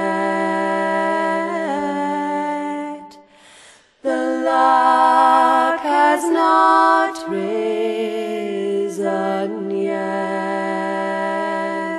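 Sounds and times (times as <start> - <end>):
voices singing in harmony: 0.0 - 11.9.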